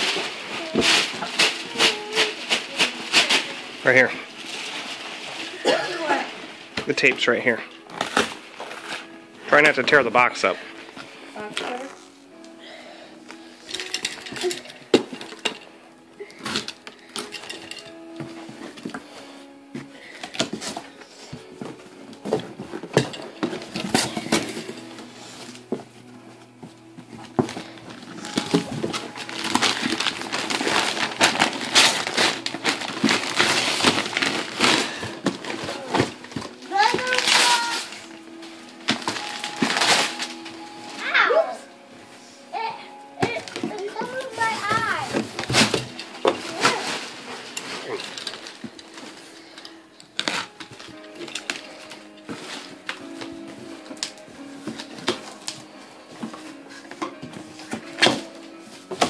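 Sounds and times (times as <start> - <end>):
packing tape peeled: 0.0 - 7.0, 7.8 - 9.2, 27.3 - 41.0, 45.1 - 59.0
rustling: 0.0 - 59.0
soft music: 0.0 - 59.0
child's voice: 1.6 - 3.0, 11.4 - 12.0, 36.7 - 37.9, 41.0 - 41.7, 42.5 - 45.3, 46.5 - 47.0.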